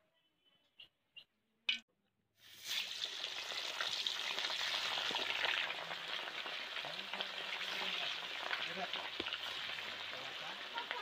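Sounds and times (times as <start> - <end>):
fish sizzling in hot oil: 2.4 - 11.0.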